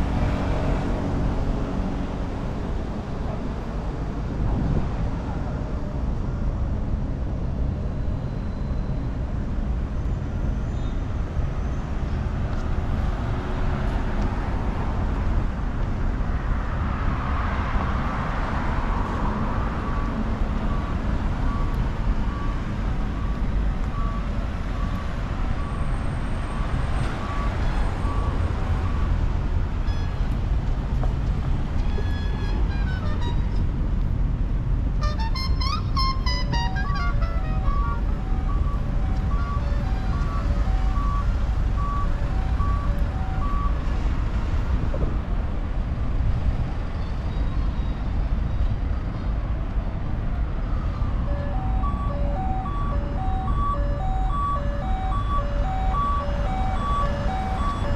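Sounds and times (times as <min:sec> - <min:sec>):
road traffic rumble: 0:00.0 - 0:57.9.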